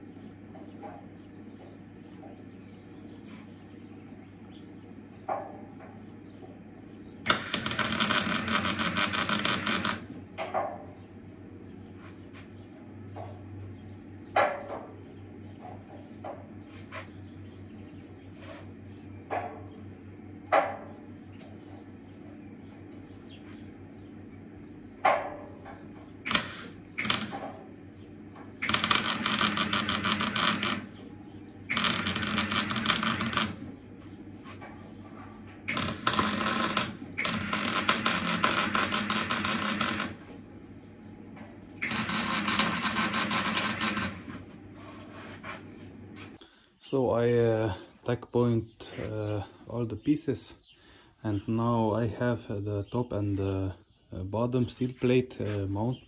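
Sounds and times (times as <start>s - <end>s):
welding arc crackling sizzle: 7.3s - 10.2s, 26.2s - 27.6s, 28.6s - 33.7s, 35.7s - 40.4s, 41.8s - 44.5s.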